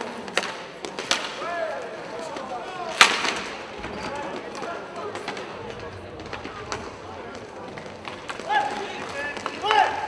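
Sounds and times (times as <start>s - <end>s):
sticks and puck clicking on floor: 0.0s - 1.4s, 4.3s - 10.0s
players' voices: 0.0s - 10.0s.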